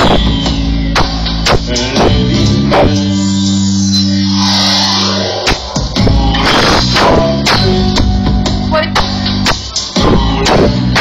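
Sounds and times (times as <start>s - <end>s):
low held electronic note: 2.1s - 8.0s.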